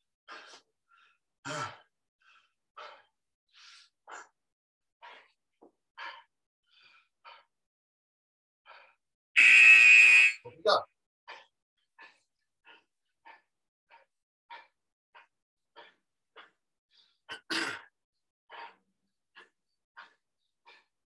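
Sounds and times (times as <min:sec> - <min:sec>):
man breathing heavily: 0:00.3 - 0:04.4, 0:05.0 - 0:07.6, 0:08.6 - 0:09.1, 0:11.3 - 0:17.9, 0:18.5 - 0:21.0
loud steady buzzing tone: 0:09.4 - 0:10.4.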